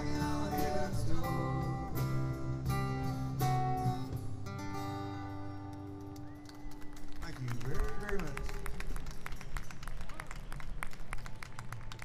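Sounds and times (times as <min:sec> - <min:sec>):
scattered hand clapping: 0:05.6 - 0:12.0.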